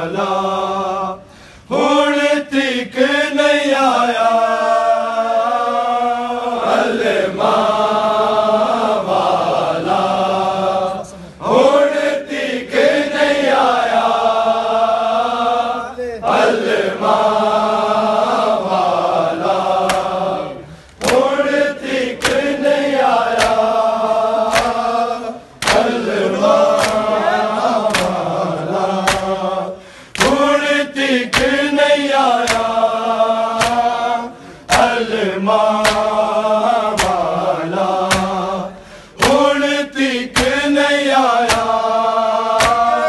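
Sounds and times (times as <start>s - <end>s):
men chanting a lament: 0.0s - 43.0s
hands slapping chests: 19.8s - 20.2s, 20.8s - 21.4s, 22.0s - 23.8s, 24.4s - 30.6s, 31.2s - 32.9s, 33.5s - 34.1s, 34.7s - 38.5s, 39.2s - 39.7s, 40.3s - 43.0s.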